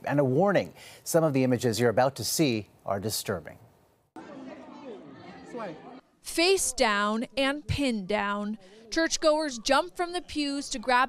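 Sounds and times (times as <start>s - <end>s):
indistinct chatter: 4.2s - 11.0s.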